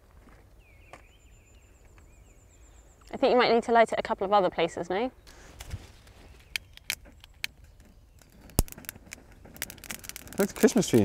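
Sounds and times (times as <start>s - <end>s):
straw crackling as lit: 5.2s - 11.0s
loud snap of burning kindling: 5.3s - 11.0s.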